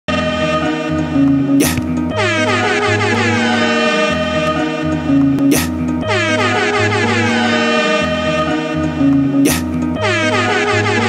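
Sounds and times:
dj mix music: 0.6s - 11.0s
air horn effect: 1.6s - 4.7s, 5.5s - 8.4s, 9.5s - 11.0s.

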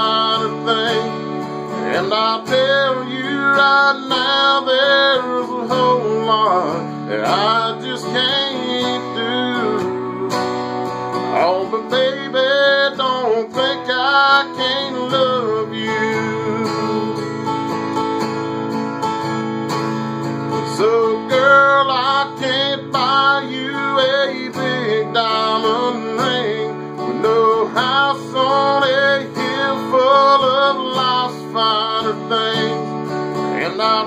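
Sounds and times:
man singing: 0.0s - 17.5s, 20.5s - 34.0s
acoustic guitar strumming: 0.0s - 34.0s.

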